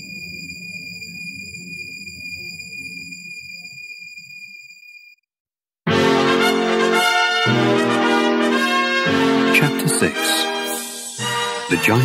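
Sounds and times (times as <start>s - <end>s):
high ringing tone: 0.0s - 5.3s
low ambient music: 5.9s - 12.0s.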